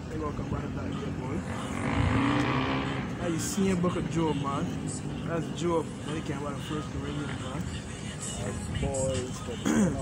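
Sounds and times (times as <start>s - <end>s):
passing vehicle engine: 1.2s - 6.5s.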